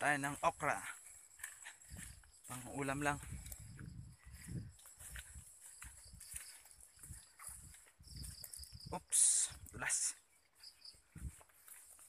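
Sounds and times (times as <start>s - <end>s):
footsteps on grass: 0.0s - 12.0s.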